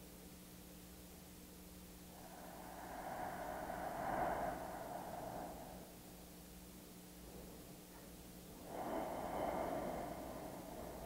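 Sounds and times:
man breathing slowly: 2.1s - 11.0s.

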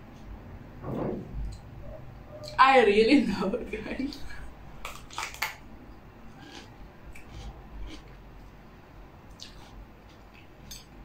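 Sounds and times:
chewing crunches: 4.8s - 5.6s, 6.3s - 8.2s, 9.3s - 10.9s.

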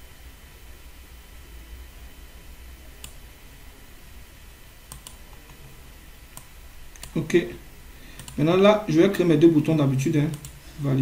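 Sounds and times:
low electrical hum: 0.0s - 11.0s
computer mouse clicks: 3.0s - 3.2s, 4.9s - 5.7s, 6.3s - 7.2s, 8.2s - 8.4s, 10.3s - 10.6s.

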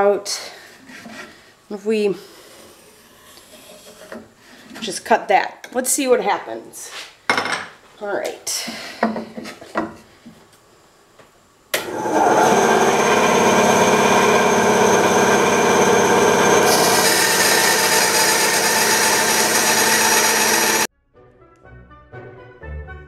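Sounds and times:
bandsaw motor and blade running: 11.8s - 20.9s
faint orchestral music: 20.9s - 23.0s.

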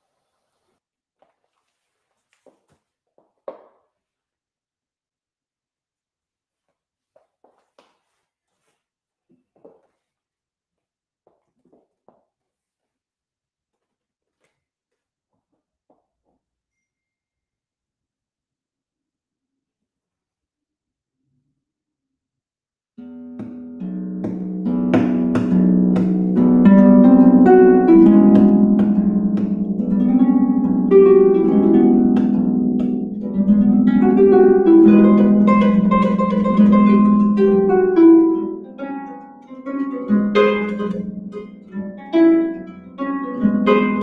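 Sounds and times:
person shuffling and sitting down: 0.0s - 4.2s, 6.5s - 10.3s
harp plucked notes: 23.0s - 44.0s.

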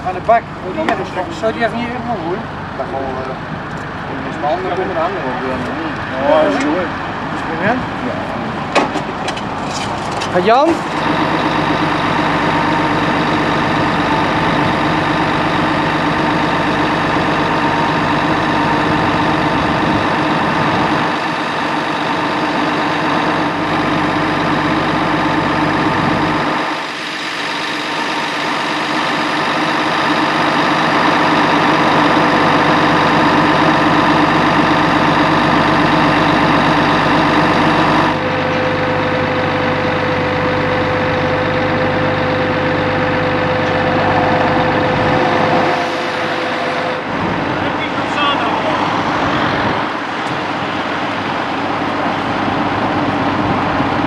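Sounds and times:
diesel truck engines running: 0.0s - 54.0s
high steady whine: 0.0s - 54.0s.

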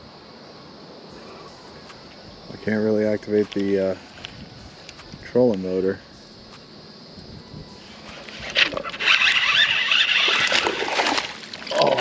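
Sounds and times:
fish thrashing and splashing: 8.1s - 12.0s.

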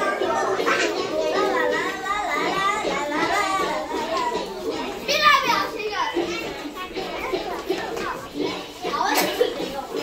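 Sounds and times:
children chattering: 0.0s - 10.0s.

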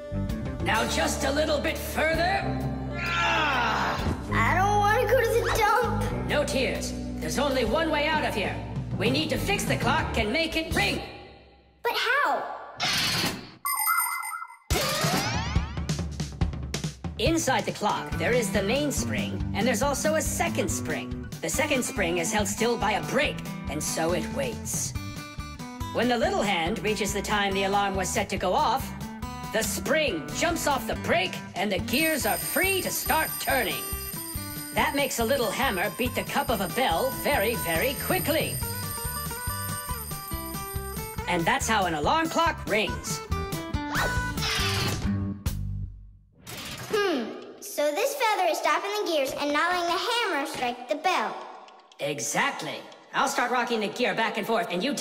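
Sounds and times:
background music: 0.0s - 11.2s, 15.1s - 45.8s
bright warbling chime: 13.7s - 14.7s
alarm clock bell ringing: 31.9s - 42.0s.

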